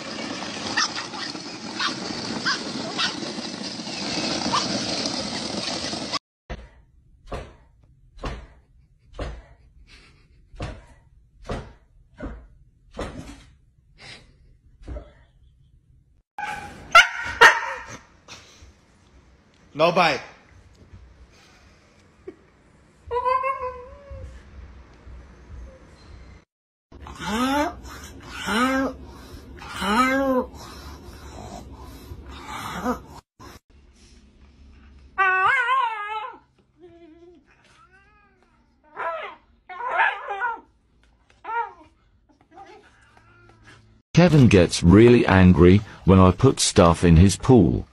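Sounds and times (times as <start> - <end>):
dog yelping: 0.6 - 3.3, 16.4 - 18.0, 35.2 - 36.4, 38.9 - 40.7
dog barking loudly: 16.4 - 18.0
dog and cat squabbling cries: 35.2 - 36.4.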